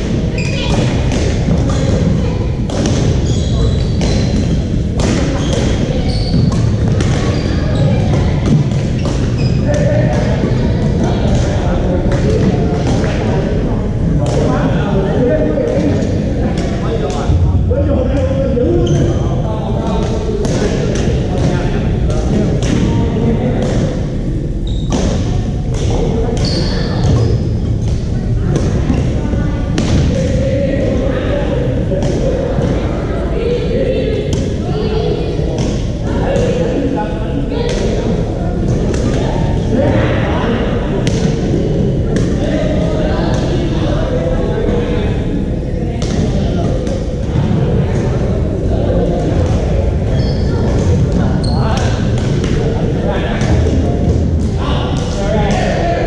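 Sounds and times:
hall rumble and voices: 0:00.0 - 0:56.0.

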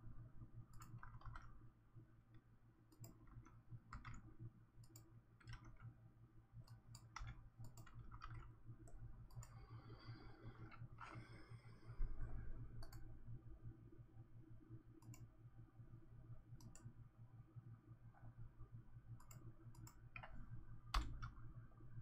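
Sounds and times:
low steady hum: 0:00.0 - 0:22.0
computer mouse clicks: 0:00.7 - 0:01.6, 0:02.3 - 0:06.0, 0:06.6 - 0:13.1, 0:14.9 - 0:15.3, 0:16.6 - 0:16.9, 0:19.1 - 0:21.4.

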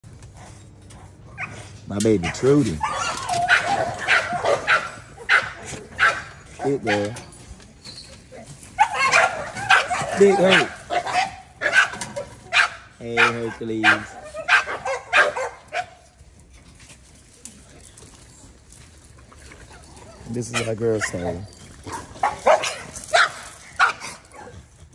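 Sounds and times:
dog crying: 0:01.3 - 0:07.3, 0:08.6 - 0:16.0, 0:19.7 - 0:24.7.

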